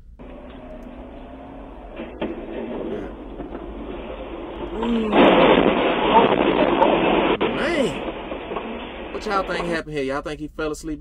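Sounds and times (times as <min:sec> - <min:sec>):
loud crash and metal crunch: 0:01.9 - 0:09.6.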